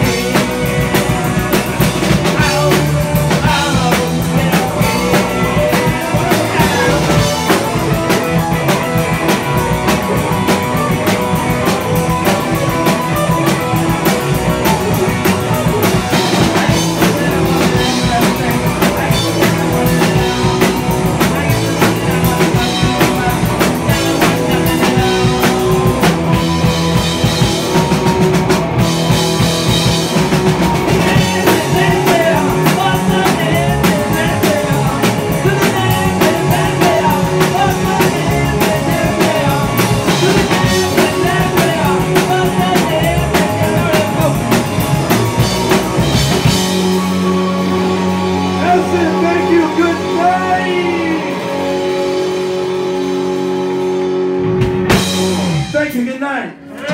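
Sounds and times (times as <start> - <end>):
bass guitar: 0.0 - 56.9
drum kit beat: 0.0 - 56.9
electric guitars: 0.0 - 56.9.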